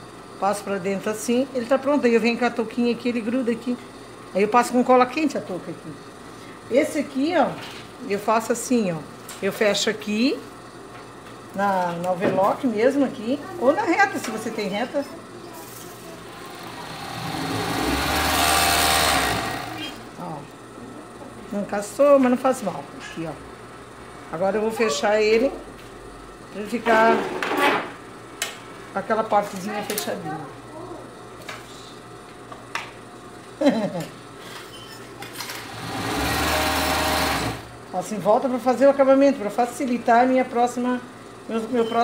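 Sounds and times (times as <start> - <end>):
overlock sewing machine stitching: 16.4 - 20.0, 35.5 - 37.7.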